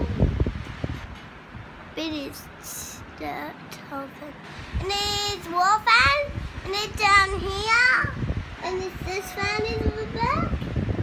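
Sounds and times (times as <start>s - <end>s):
air buffeting microphone: 0.0s - 11.0s
electric fans running: 0.0s - 11.0s.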